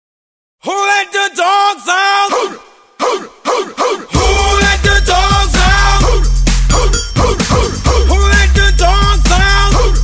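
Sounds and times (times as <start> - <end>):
person singing pop song: 0.6 - 10.0.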